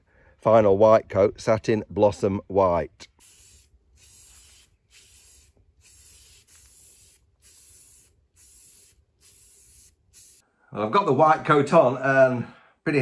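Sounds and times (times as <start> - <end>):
aerosol spray can hissing: 3.1 - 10.4.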